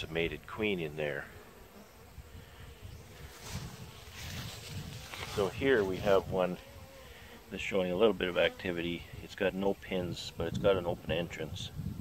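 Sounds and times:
bees buzzing: 0.0s - 11.1s.

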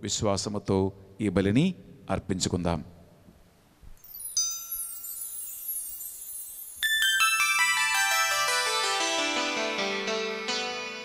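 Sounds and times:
descending ringing chimes: 4.0s - 10.5s
keyboard music: 6.8s - 11.0s.

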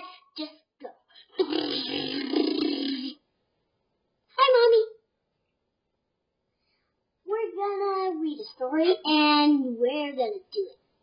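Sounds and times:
boy making rasping silly noise: 1.2s - 3.2s.

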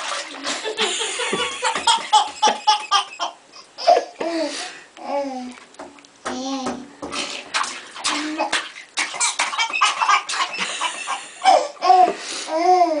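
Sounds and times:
bathwater splashing: 0.0s - 3.3s, 6.4s - 12.1s
baby laughing: 0.9s - 4.5s, 8.1s - 13.0s
baby squealing: 9.2s - 10.8s.

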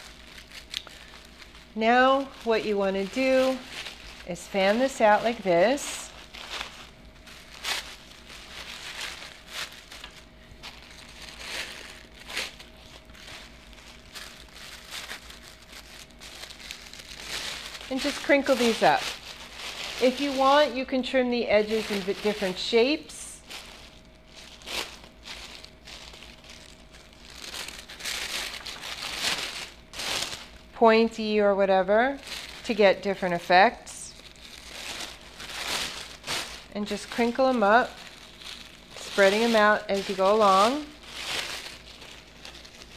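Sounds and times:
tissue paper rustling: 0.0s - 42.9s.

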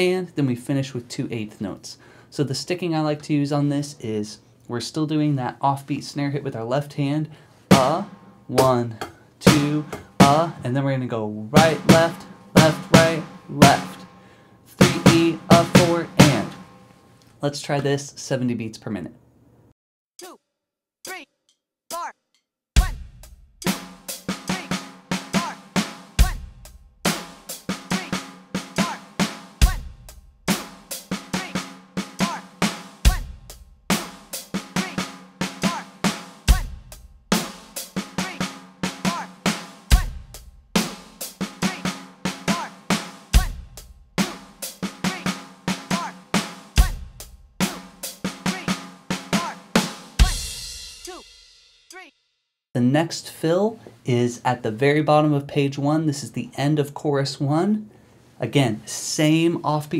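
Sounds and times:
electronic drum kit rock groove: 7.7s - 10.6s, 11.6s - 14.1s, 14.8s - 16.7s, 22.8s - 51.5s.

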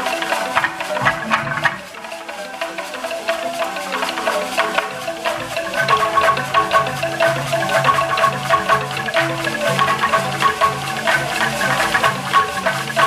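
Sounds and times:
wooden xylophone fast run: 0.0s - 13.0s.

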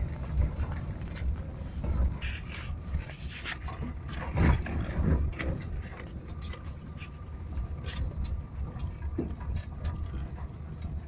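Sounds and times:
van body rattling: 0.0s - 11.0s
van engine and road rumble: 0.0s - 11.0s.

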